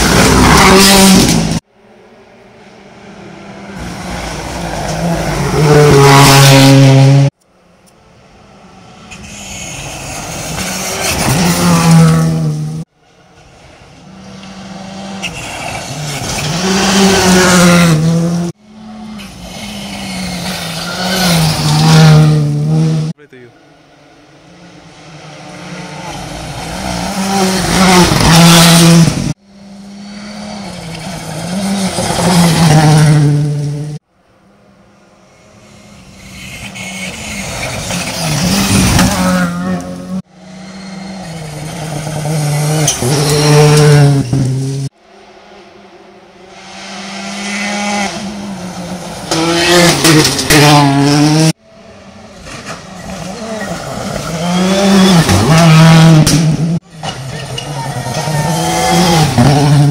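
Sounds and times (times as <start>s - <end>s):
rally cars at full throttle: 0.0s - 59.9s.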